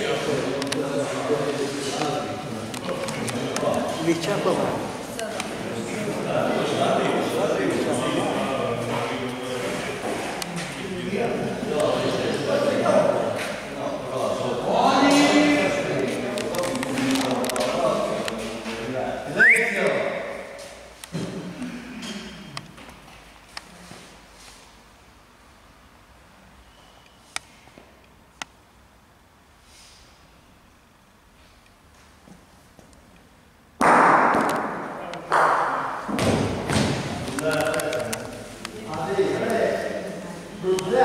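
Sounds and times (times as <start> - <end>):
voices talking in a hall: 0.0 - 22.8, 34.2 - 41.0
loud thuds echoing in a hall: 33.8 - 37.3.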